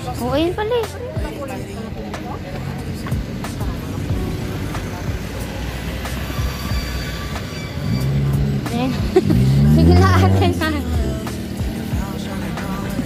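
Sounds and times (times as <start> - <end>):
background music: 0.0 - 13.0
traffic rumble: 0.0 - 13.0.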